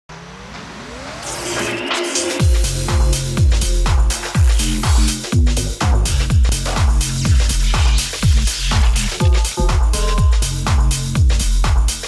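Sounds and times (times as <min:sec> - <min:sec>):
synthesized riser whoosh: 0:00.1 - 0:05.4.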